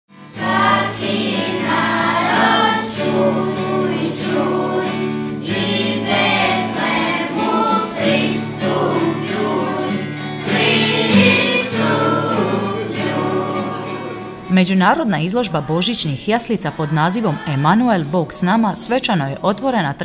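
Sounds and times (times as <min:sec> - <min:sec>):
strummed acoustic guitar: 0:00.1 - 0:18.4
children's choir singing: 0:00.2 - 0:20.0.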